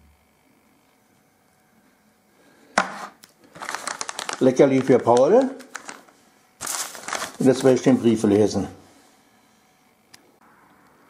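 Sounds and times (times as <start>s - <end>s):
packaging handling noise: 2.8s - 8.0s.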